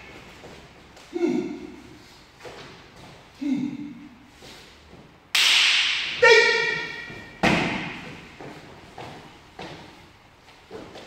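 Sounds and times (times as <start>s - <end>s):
sharp slap echoing: 5.4s - 8.1s
short high-pitched shout: 6.1s - 7.1s.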